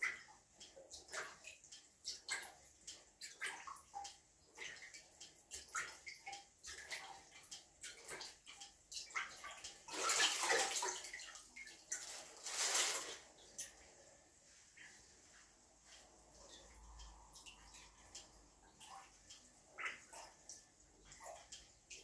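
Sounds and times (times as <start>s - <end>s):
plunger splashing in toilet: 3.2s - 13.8s.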